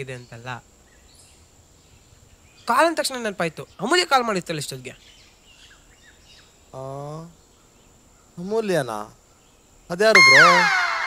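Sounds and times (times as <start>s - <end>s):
faint bird chirp: 0.0s - 4.0s, 4.6s - 11.0s
person speaking: 10.2s - 11.0s.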